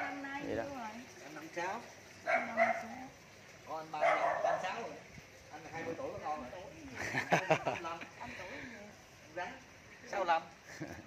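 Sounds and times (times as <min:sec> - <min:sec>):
dogs barking: 0:00.0 - 0:00.3, 0:02.2 - 0:03.1, 0:03.9 - 0:05.0.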